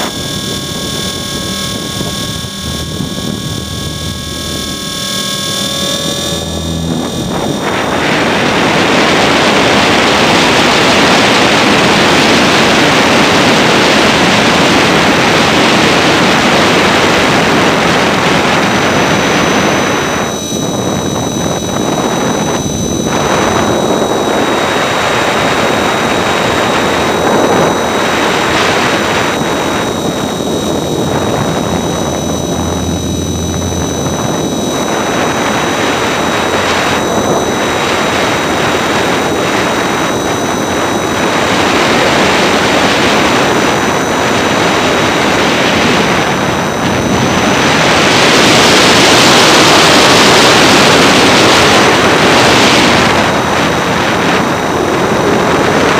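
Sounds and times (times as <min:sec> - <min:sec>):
high electric motor whine: 0:00.0 - 0:55.9.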